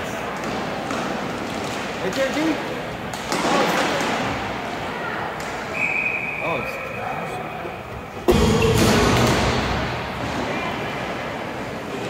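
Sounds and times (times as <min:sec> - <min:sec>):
voices in echoing rink: 0:00.0 - 0:12.0
hockey sticks and puck knocking: 0:00.3 - 0:04.4
referee whistle: 0:05.7 - 0:07.0.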